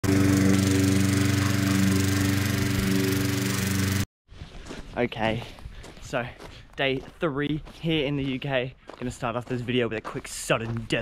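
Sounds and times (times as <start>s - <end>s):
small engine running: 0.0s - 4.1s.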